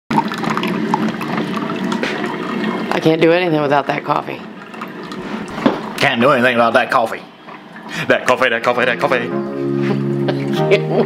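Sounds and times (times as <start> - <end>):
coffee trickling into mug: 0.1 - 3.2, 3.9 - 8.4.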